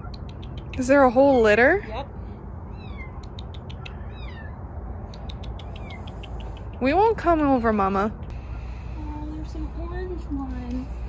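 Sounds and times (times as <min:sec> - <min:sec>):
kittens mewing: 0:02.6 - 0:06.8.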